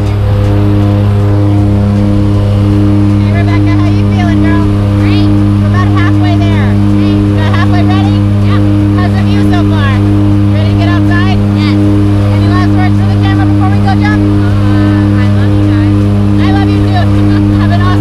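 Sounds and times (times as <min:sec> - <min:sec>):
propeller aircraft droning in cabin: 0:00.0 - 0:18.0.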